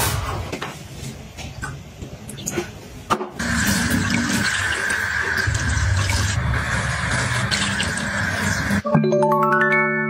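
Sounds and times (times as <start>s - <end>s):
water running into a pitcher: 3.4s - 8.8s.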